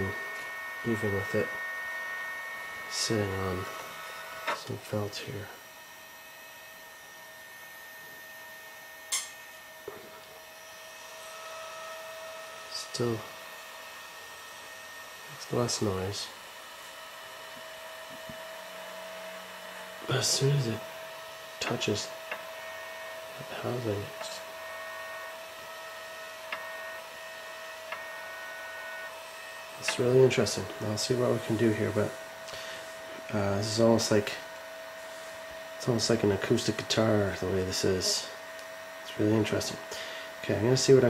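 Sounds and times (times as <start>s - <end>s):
cooling fan whine: 0.0s - 41.0s.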